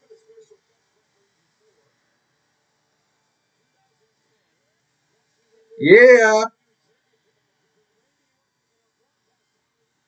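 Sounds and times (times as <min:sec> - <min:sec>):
faint distant voice murmur: 0:03.6 - 0:09.8.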